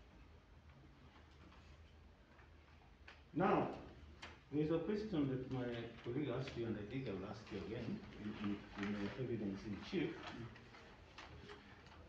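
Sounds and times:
light clicks of papers and pen: 0.4s - 12.0s
man's voice: 4.6s - 10.6s.

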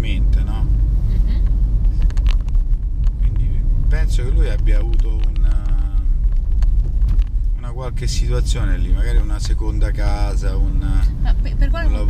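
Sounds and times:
car engine rumble: 0.0s - 12.0s
road noise: 0.0s - 12.0s.

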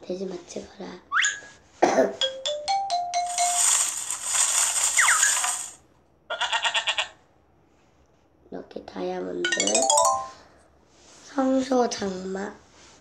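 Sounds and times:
loud sparkling hiss: 3.2s - 5.8s
cartoon ram bleating: 6.3s - 7.2s
rising run of chiming notes: 9.5s - 10.5s.

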